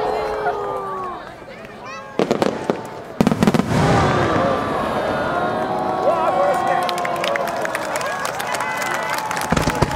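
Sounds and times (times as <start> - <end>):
voices: 0.0 - 9.6
fireworks bangs and booms: 2.1 - 5.9, 9.4 - 9.9.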